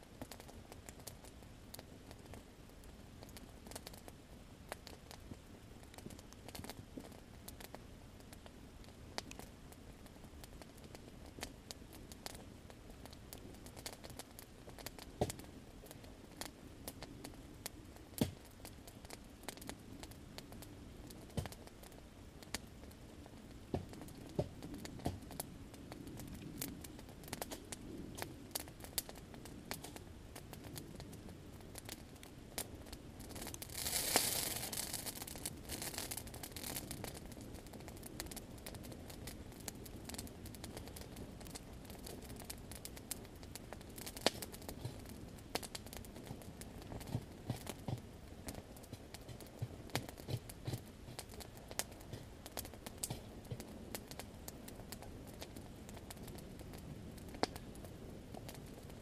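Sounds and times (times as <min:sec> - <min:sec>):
campfire crackling and popping: 0:00.0 - 0:59.0.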